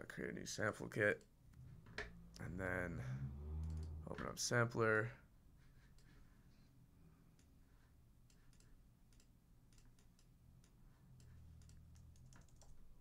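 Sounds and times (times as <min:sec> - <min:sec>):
low steady hum: 0:01.2 - 0:13.0
keyboard and mouse clicks: 0:03.6 - 0:04.3, 0:08.2 - 0:12.9.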